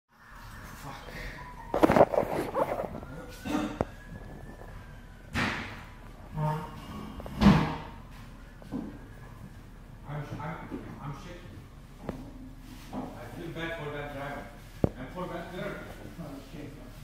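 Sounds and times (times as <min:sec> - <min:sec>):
steady background hum: 0:00.1 - 0:17.0.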